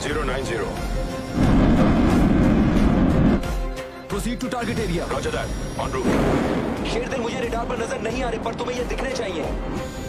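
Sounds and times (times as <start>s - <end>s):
film soundtrack music: 0.0s - 10.0s.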